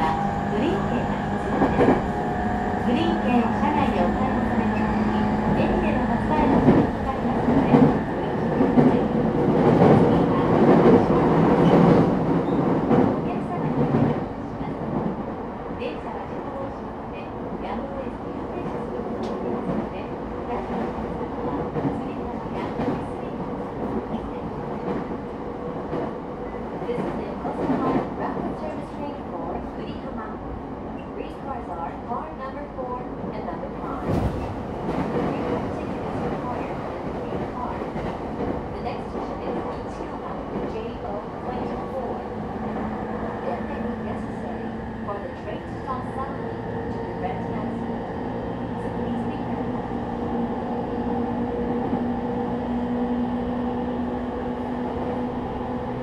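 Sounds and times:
train rolling noise: 0:00.0 - 0:15.3, 0:32.8 - 0:56.0.

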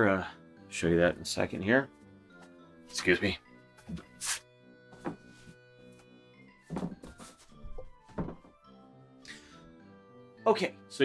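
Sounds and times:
quiet background music: 0:00.0 - 0:11.0
dull thunks and knocks: 0:06.7 - 0:08.6.

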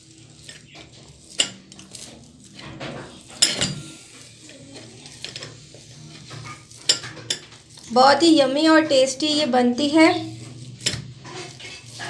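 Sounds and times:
potato masher mashing potatoes: 0:00.0 - 0:12.0
masher clinking on metal bowl: 0:00.3 - 0:05.5, 0:10.6 - 0:12.0.

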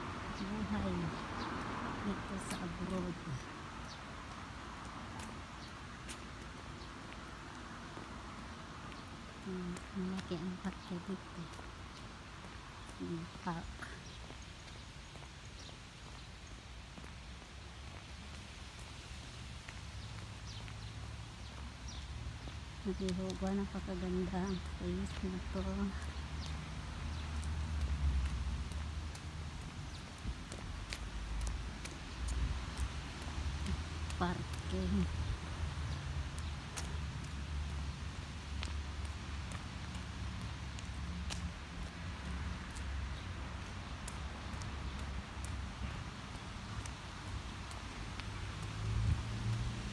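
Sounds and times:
footsteps on brick path: 0:00.0 - 0:49.9
wind rumble on microphone: 0:48.8 - 0:49.9.

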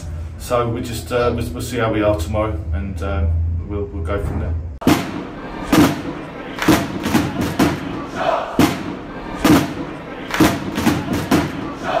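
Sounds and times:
heavy drum hits: 0:04.8 - 0:11.8
crowd noise: 0:04.8 - 0:12.0.

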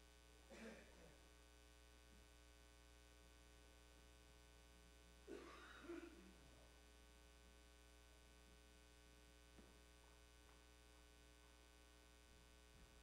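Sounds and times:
electrical mains hum: 0:00.0 - 0:13.0.

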